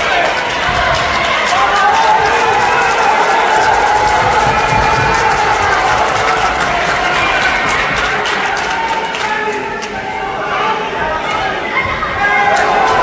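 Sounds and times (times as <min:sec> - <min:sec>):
crowd shouting and cheering: 0:00.0 - 0:13.0
sharp claps: 0:00.1 - 0:10.0.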